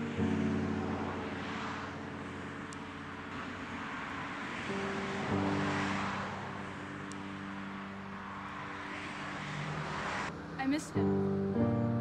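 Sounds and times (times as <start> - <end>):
distant traffic rush: 0.0 - 12.0.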